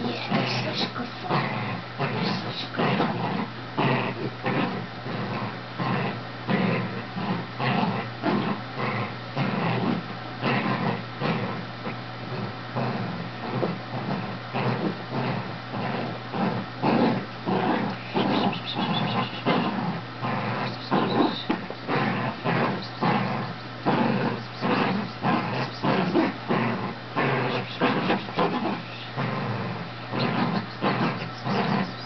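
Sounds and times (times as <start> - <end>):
dog growling: 0.0 - 32.0.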